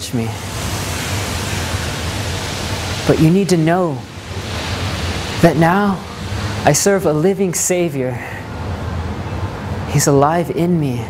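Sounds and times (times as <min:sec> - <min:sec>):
low hum: 0:00.0 - 0:09.9
steady hiss: 0:00.0 - 0:11.0.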